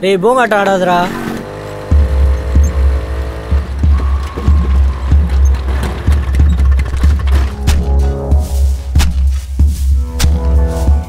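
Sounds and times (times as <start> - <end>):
deep pulsing bass beat: 1.8 - 11.0.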